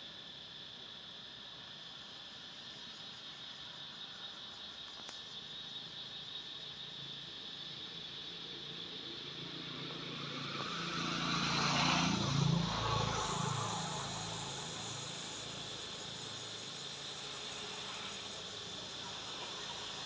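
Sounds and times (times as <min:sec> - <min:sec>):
insects buzzing: 0:00.3 - 0:20.0
motor vehicle passing: 0:09.6 - 0:16.0.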